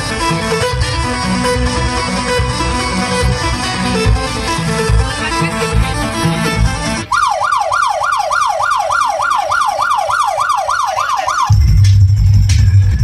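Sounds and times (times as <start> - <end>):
heavy bass beat: 0.0 - 8.0, 8.8 - 13.0
dance music over loudspeakers: 0.0 - 13.0
siren wailing: 6.8 - 11.7.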